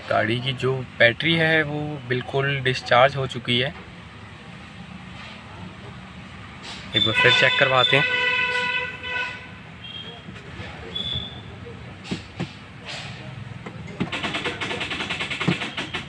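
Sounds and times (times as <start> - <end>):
car starter clicking rapidly: 13.7 - 16.0.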